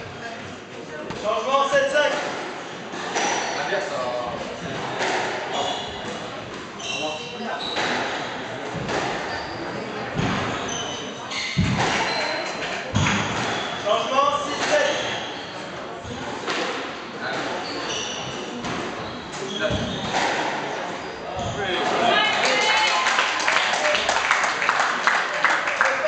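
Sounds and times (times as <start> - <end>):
squash ball thuds: 11.6 - 12.1.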